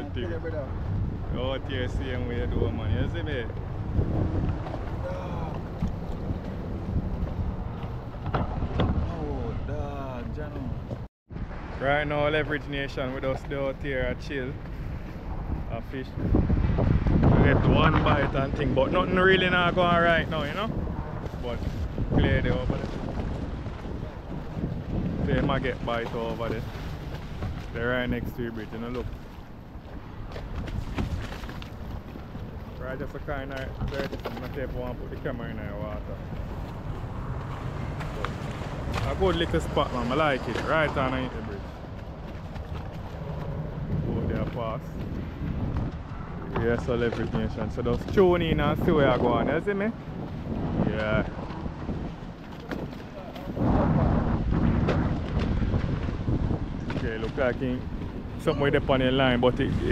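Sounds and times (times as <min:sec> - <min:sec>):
wind buffeting microphone: 0:00.0 - 0:59.9
water slapping seawall: 0:16.8 - 0:59.9.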